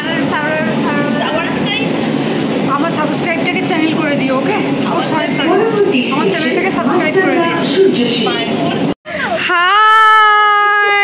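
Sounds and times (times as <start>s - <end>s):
metro train running: 0.0s - 9.0s
women talking: 2.7s - 11.0s.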